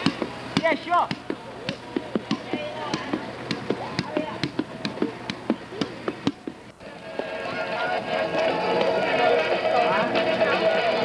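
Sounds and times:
indistinct voices chattering: 0:00.0 - 0:11.0.

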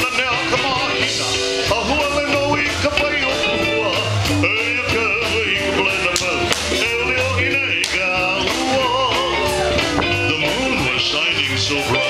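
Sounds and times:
bass and guitar: 0:00.0 - 0:12.0
person singing: 0:00.0 - 0:12.0.

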